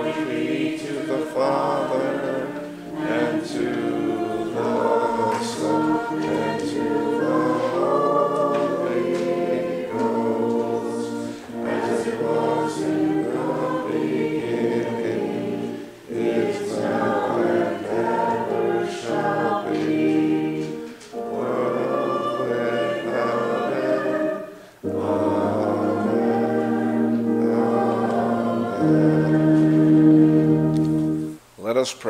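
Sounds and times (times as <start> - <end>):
church choir singing: 0.0 - 31.4.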